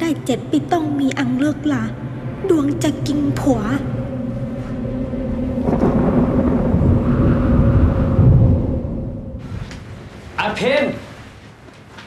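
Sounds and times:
thunder rumbling: 0.0s - 11.4s
low steady hum: 0.0s - 11.7s.

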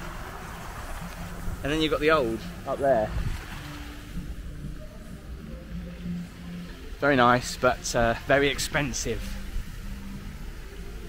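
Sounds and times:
low outdoor rushing noise: 0.0s - 11.0s.

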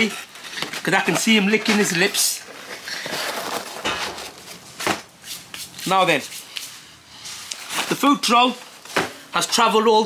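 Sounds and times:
cardboard box rustling: 0.6s - 5.0s.

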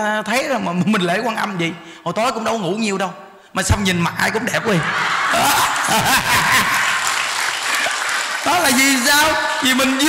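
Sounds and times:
audience applauding: 5.0s - 10.0s.

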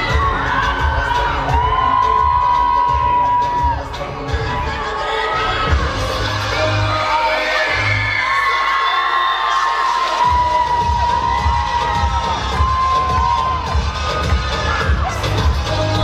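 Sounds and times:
audience cheering and screaming: 0.0s - 16.0s
dance music: 0.0s - 16.0s.

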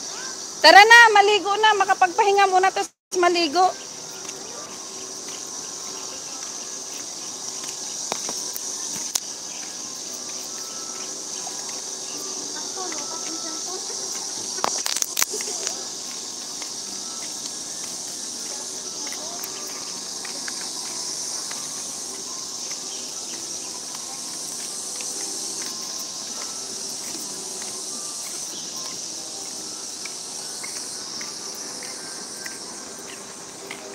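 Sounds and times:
high-pitched insect drone: 0.0s - 33.9s.

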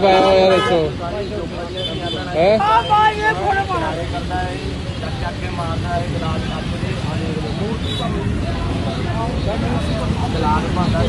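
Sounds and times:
people talking: 0.0s - 11.0s
road traffic rumble: 0.0s - 11.0s.

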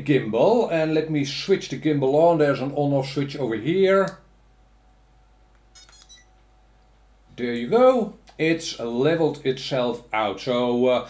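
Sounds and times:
high electronic beeps: 5.8s - 6.3s.

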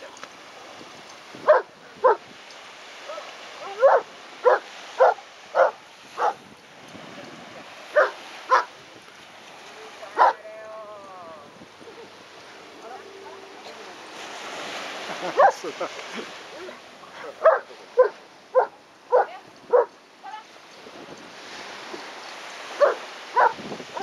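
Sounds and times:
dog barking: 1.5s - 2.2s, 3.1s - 6.4s, 7.9s - 8.7s, 10.2s - 10.4s, 15.4s - 15.6s, 17.2s - 19.9s, 22.8s - 24.0s.

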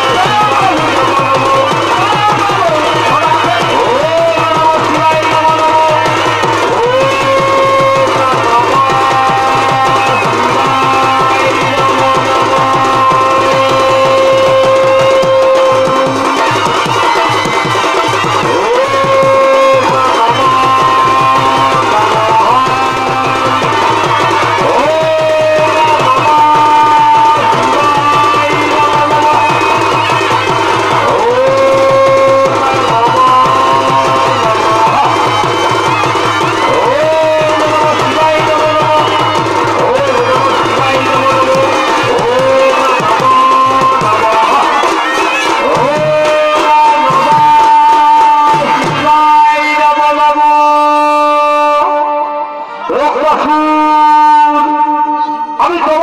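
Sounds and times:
fast steady drumming: 0.0s - 52.0s
shehnai melody: 0.0s - 56.0s.

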